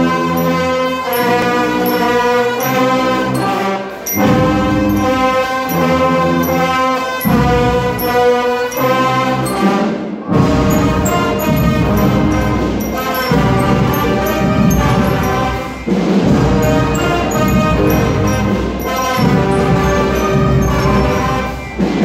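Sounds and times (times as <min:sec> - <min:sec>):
brass band playing loudly: 0:00.0 - 0:22.0.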